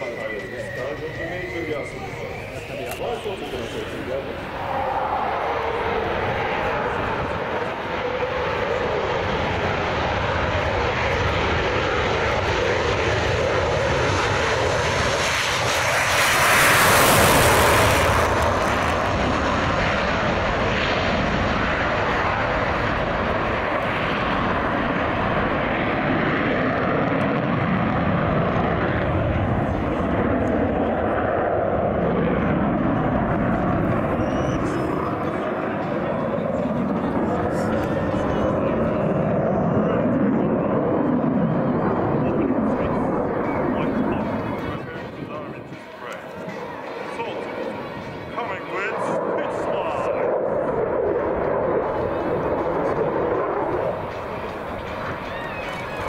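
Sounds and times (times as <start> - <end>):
jet engine roar: 0.0 - 56.0.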